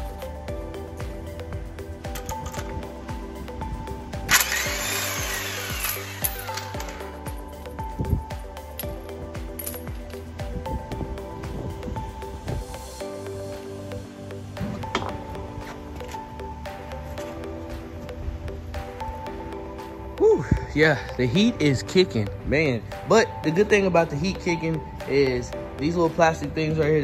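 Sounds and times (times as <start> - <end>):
background music: 0.0 - 27.0
impact wrench whirring: 4.3 - 7.0.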